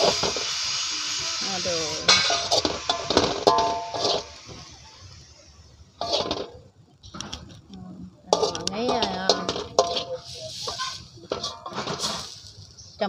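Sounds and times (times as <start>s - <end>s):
food sizzling: 0.0s - 13.0s
metal spatula scraping a wok: 1.4s - 4.8s, 6.0s - 6.6s, 8.3s - 12.9s.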